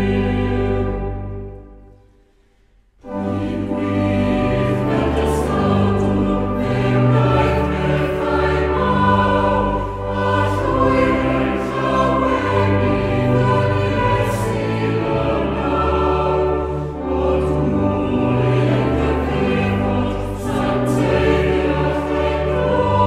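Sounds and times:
choir singing a hymn: 0.0 - 2.1, 3.0 - 23.0.

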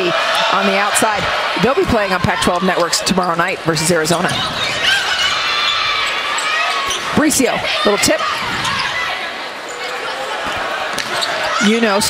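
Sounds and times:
crowd noise echoing: 0.0 - 12.0
shoe squeaks on hardwood court: 8.2 - 9.1, 11.0 - 11.7.

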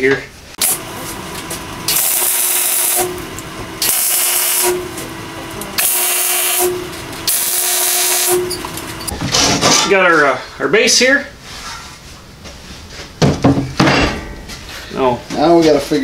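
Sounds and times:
steady welder hum: 0.5 - 9.5
arc welder hissing crackle: 0.6 - 9.2.

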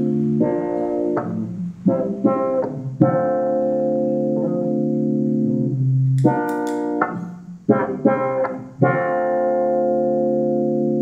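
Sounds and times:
electric guitar chords: 0.0 - 11.0.

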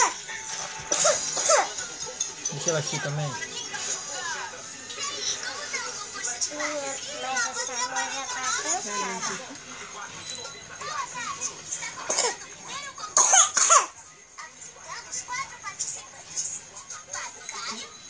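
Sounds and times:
children's voices: 4.9 - 9.6.

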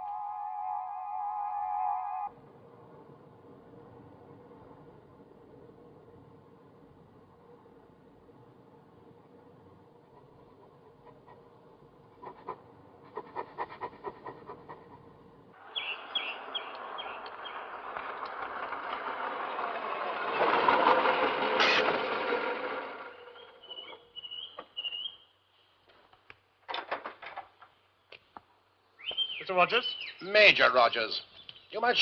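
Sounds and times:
motor vehicle passing: 2.6 - 24.6
birds chirping: 15.6 - 18.0, 23.2 - 25.4, 28.9 - 32.0.

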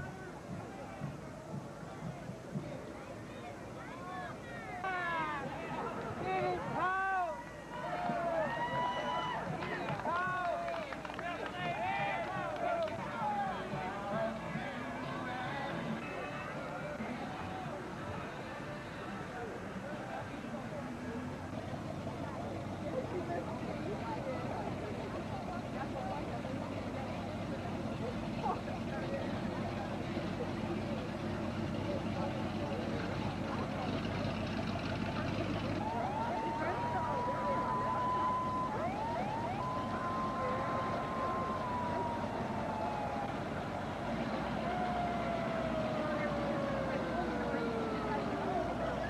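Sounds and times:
crowd chatter: 0.0 - 49.0
passing vehicles: 0.0 - 49.0.

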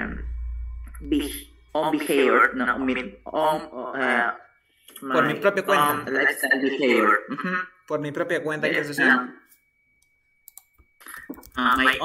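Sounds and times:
faint steady high tone: 0.0 - 12.0
computer mouse clicks: 10.0 - 12.0.

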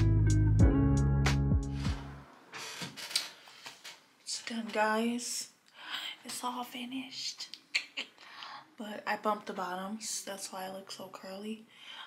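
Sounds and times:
guitar background music: 0.0 - 2.2.

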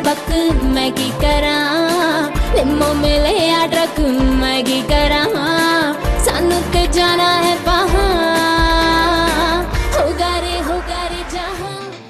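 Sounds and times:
pop song with sung melody: 0.0 - 12.0.

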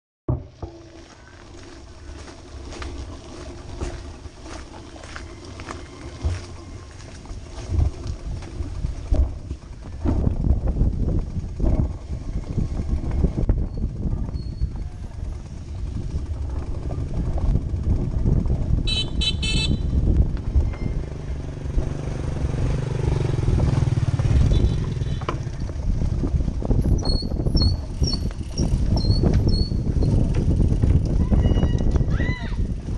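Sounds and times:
bicycle rattling over wooden planks: 0.3 - 20.9, 23.2 - 32.9
motorcycle engine running: 0.3 - 32.9.

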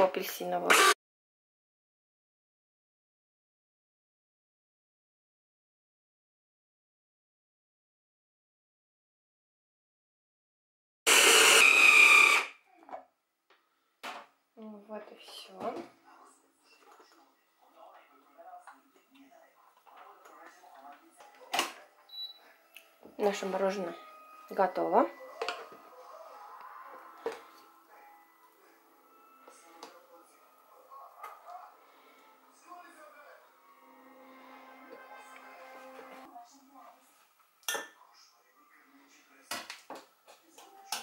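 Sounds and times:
hand blender whirring: 0.7 - 1.0, 11.1 - 12.6.

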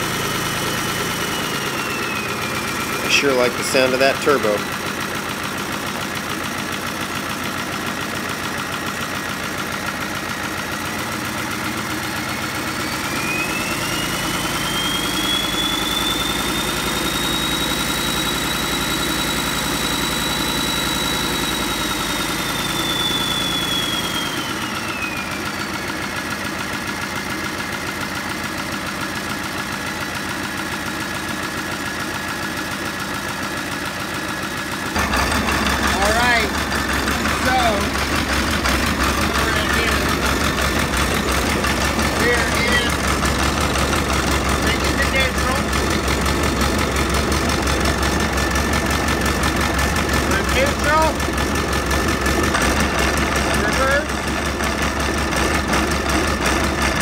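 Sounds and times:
diesel engine revving: 0.0 - 28.9, 33.0 - 57.0
turbo whistle: 0.2 - 3.9, 12.3 - 26.2.

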